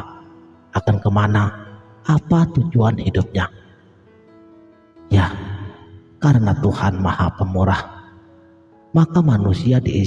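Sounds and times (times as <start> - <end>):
soft background music: 0.0 - 10.0
man speaking: 0.8 - 3.6, 5.1 - 8.1, 8.9 - 10.0.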